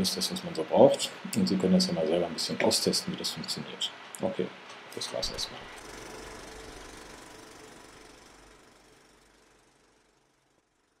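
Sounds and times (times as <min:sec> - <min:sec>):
film projector clatter: 0:05.2 - 0:09.8.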